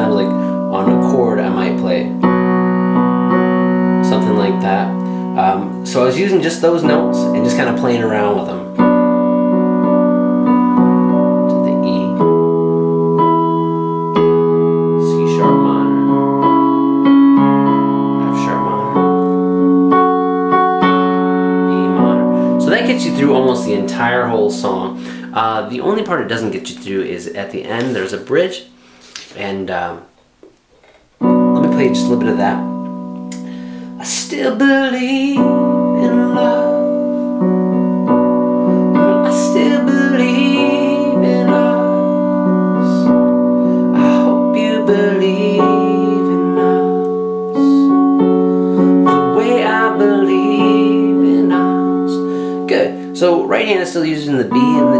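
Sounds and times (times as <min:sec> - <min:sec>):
digital piano chord and notes: 0:00.0 - 0:54.9.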